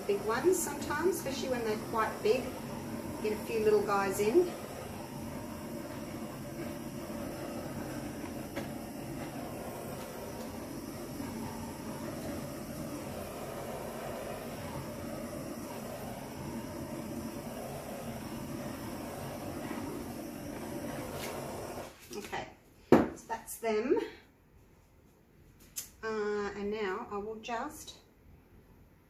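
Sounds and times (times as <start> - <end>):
torch flame roaring: 0.0 - 22.3.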